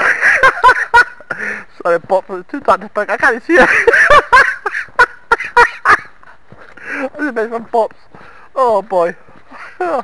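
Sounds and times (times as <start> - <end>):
man cackling with laughter: 0.0 - 1.5, 3.5 - 6.2, 9.6 - 10.0.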